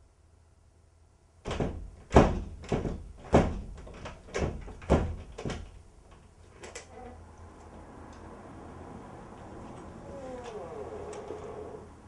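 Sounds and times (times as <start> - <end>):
heavy knocks on a door: 1.4 - 5.8.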